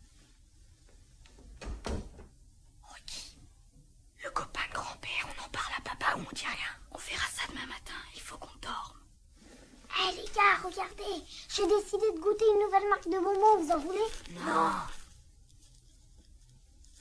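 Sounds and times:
hushed whispering voices: 0:02.8 - 0:03.4.

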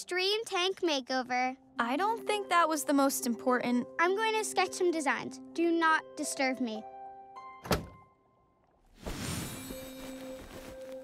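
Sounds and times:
soft background music: 0:00.0 - 0:11.0
door being shut: 0:07.6 - 0:08.0.

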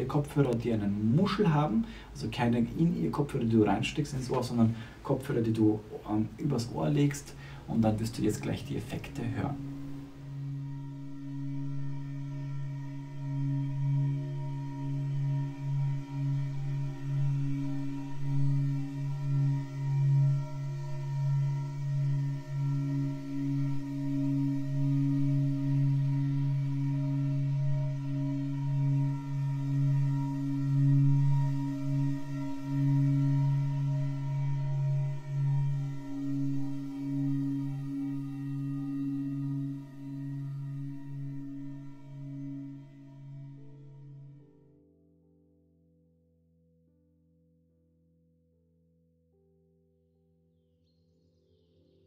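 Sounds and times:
low meditation drone: 0:00.0 - 0:45.4.

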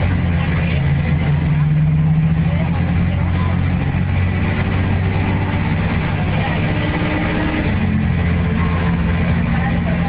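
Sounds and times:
bus diesel engine running: 0:00.0 - 0:10.0.

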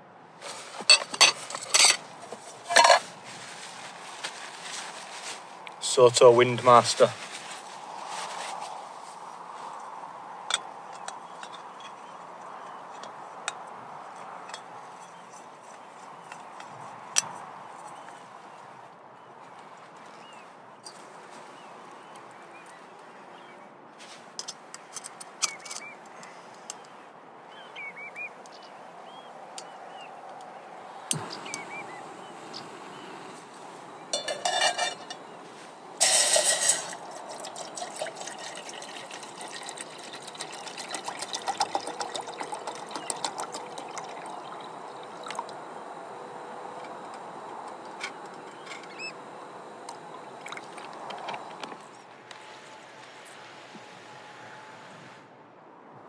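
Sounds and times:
camping stove clicks and knocks: 0:34.2 - 0:35.2
water pouring into metal pot: 0:36.0 - 0:45.7, 0:50.1 - 0:51.7.

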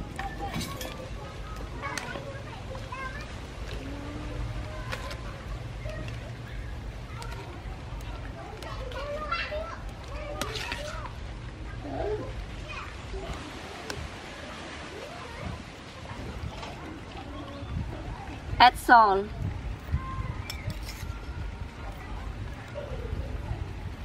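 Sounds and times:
children calling and chattering: 0:00.0 - 0:24.0.

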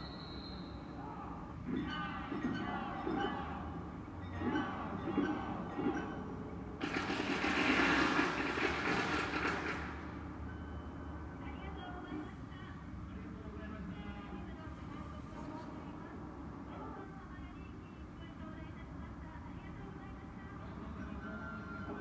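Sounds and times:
voices: 0:00.0 - 0:06.1, 0:11.2 - 0:22.0
street procession music: 0:04.4 - 0:10.3.

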